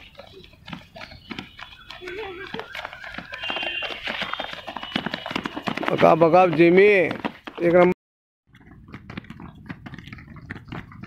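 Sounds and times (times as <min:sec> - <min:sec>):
running footsteps on concrete: 0:00.0 - 0:11.0.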